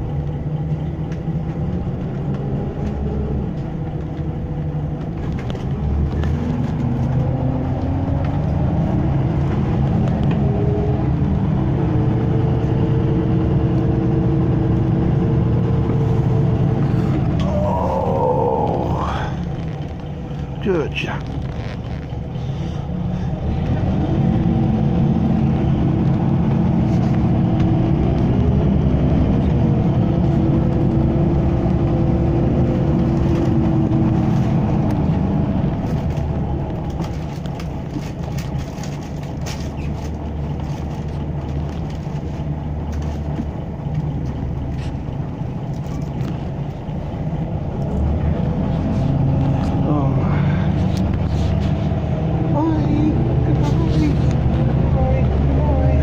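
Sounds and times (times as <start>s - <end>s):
bus engine accelerating: 0.0s - 56.0s
road noise: 0.0s - 56.0s.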